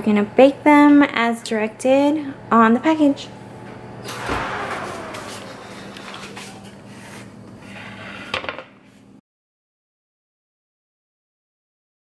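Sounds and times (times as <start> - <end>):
oven door opening thump: 4.1 - 6.8
sharp knock: 4.1 - 6.8
rush of noise: 4.1 - 7.0.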